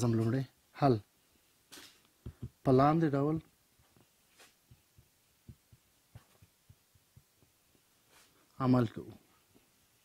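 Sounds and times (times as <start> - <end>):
marker writing on whiteboard: 3.8 - 8.3.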